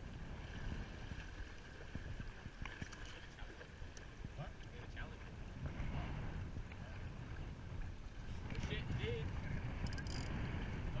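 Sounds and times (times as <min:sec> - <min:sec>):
water washing along hull: 0:00.0 - 0:11.0
wind buffeting microphone: 0:00.0 - 0:11.0.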